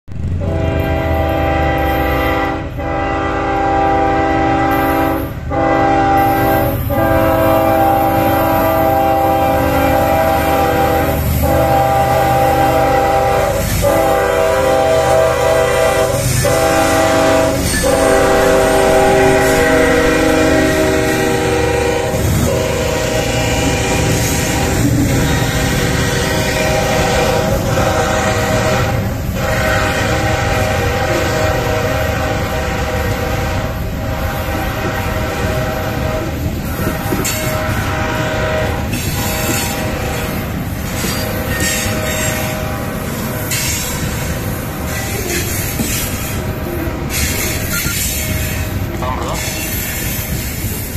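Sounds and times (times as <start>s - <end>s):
rail cars rolling: 0.0s - 50.9s
locomotive engine rumble: 0.1s - 4.7s, 5.3s - 50.9s
locomotive air horn blasts: 0.3s - 46.3s.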